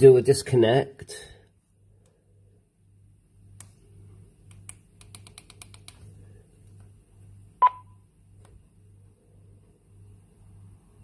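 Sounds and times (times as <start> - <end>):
faint pulsing low hum: 0.0 - 11.0
short beep: 7.6 - 7.9.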